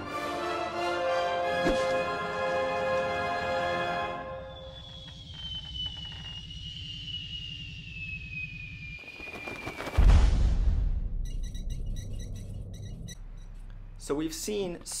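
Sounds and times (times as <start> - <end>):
falling whistle: 3.8 - 10.1.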